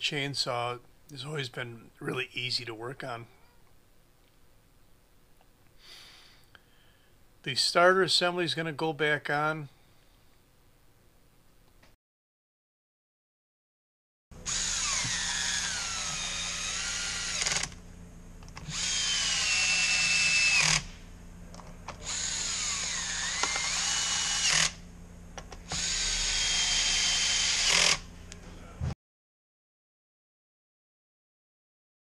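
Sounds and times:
cordless drill whining: 0:14.4 - 0:17.8, 0:18.6 - 0:21.0, 0:22.0 - 0:24.8, 0:25.6 - 0:28.1.

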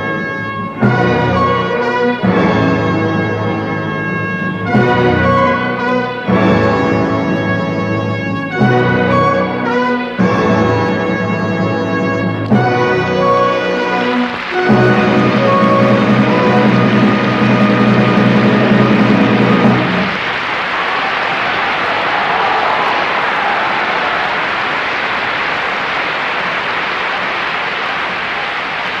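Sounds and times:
orchestra holding a brassy chord: 0:00.0 - 0:20.2
audience applause: 0:12.3 - 0:29.0.

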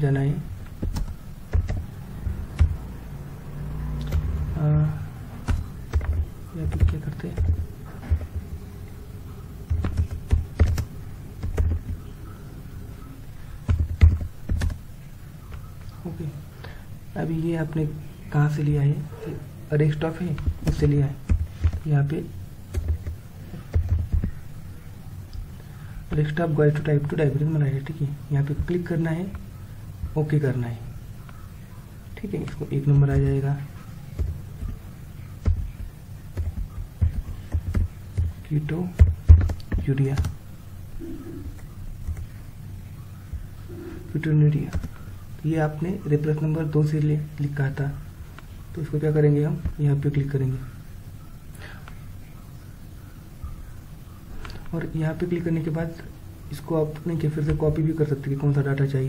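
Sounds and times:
computer keyboard typing: 0:00.6 - 0:02.9, 0:04.0 - 0:12.4, 0:13.6 - 0:14.9, 0:20.2 - 0:22.1, 0:22.7 - 0:24.4, 0:28.5 - 0:30.2, 0:32.4 - 0:40.4, 0:41.4 - 0:42.4, 0:44.5 - 0:45.1, 0:57.0 - 0:57.8.

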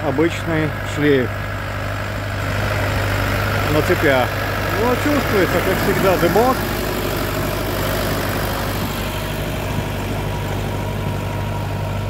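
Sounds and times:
tractor diesel engine running: 0:00.0 - 0:12.0.

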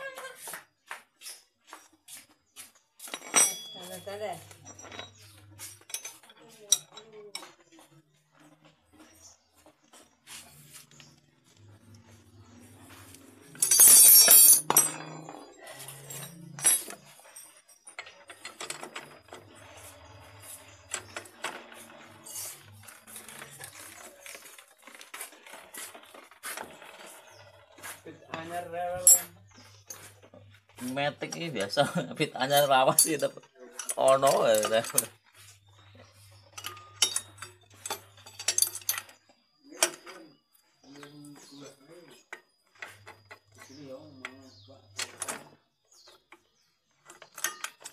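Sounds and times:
metal tool clinking: 0:03.0 - 0:07.6, 0:13.0 - 0:24.4, 0:26.8 - 0:40.2, 0:47.0 - 0:47.9.

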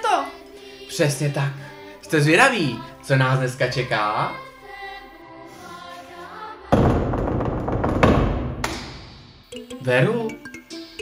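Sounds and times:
quiet music: 0:00.0 - 0:06.8, 0:09.5 - 0:11.0
fist pounding on door: 0:06.7 - 0:09.2.

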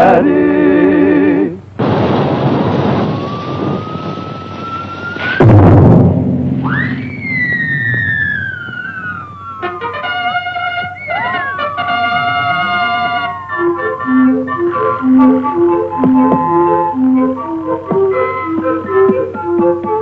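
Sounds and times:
loud crash: 0:01.8 - 0:09.6
rushing noise with rising whistle: 0:03.0 - 0:05.6, 0:06.6 - 0:09.7
siren-like tone: 0:03.1 - 0:05.6, 0:06.6 - 0:17.3
band music: 0:09.3 - 0:20.0.

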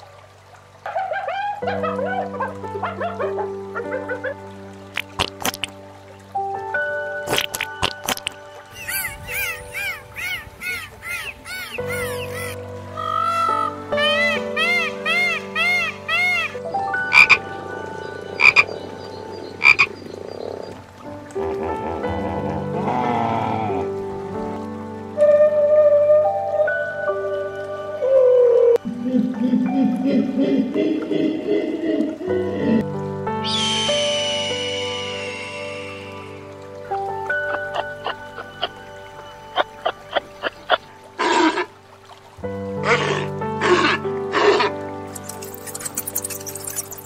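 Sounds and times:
background music with low drone: 0:00.0 - 0:47.0
hyena cubs yipping squeals: 0:08.7 - 0:16.6, 0:42.8 - 0:47.0
peacock honking calls: 0:08.7 - 0:17.4.

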